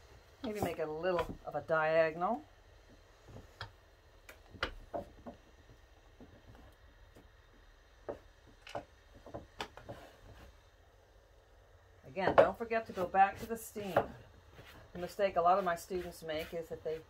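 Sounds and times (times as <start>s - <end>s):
hat block knocking on wooden table: 8.0s - 10.0s.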